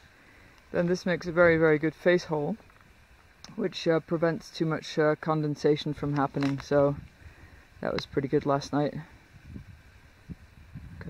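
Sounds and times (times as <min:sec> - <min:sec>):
low microphone rumble: 0:05.8 - 0:11.0.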